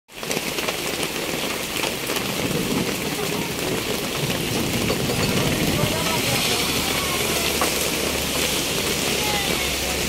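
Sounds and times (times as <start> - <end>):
heavy rain pouring: 0.1 - 10.0
drops ticking on metal awning: 0.2 - 10.0.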